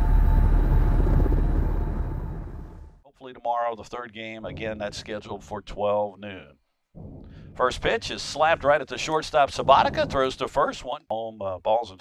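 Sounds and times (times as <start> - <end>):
deep loud rumbling: 0.0 - 3.0, 7.0 - 8.8, 9.4 - 10.3.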